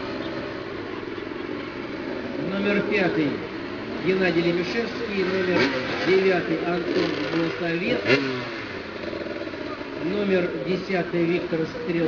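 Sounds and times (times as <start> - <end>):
motorcycle engine revving: 0.0 - 12.0
motorcycle engines idling: 0.0 - 12.0.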